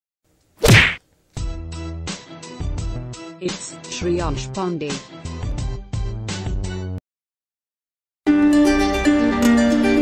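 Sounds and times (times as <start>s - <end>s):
swish and whack effect: 0.6s - 1.0s.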